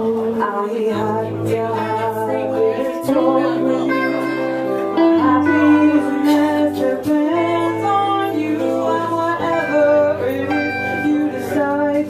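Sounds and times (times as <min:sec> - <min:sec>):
guitar playing: 0:00.0 - 0:12.0
woman singing: 0:00.0 - 0:12.0.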